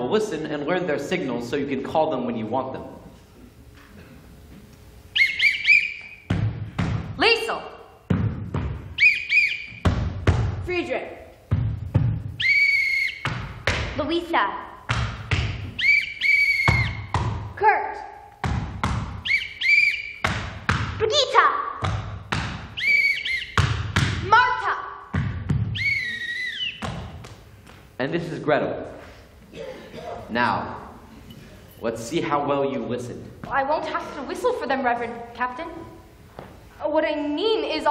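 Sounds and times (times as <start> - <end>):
whistle signal calls: 5.1 - 6.3, 9.0 - 9.9, 12.3 - 13.3, 15.7 - 17.1, 19.2 - 20.3, 22.8 - 23.6, 25.7 - 26.9.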